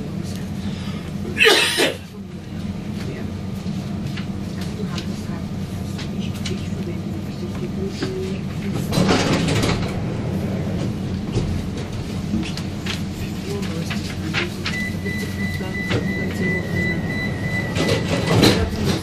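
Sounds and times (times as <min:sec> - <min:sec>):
train equipment humming: 0:00.0 - 0:19.0
train doors clunking shut: 0:08.0 - 0:13.1, 0:15.6 - 0:19.0
high warning beep: 0:14.7 - 0:18.4.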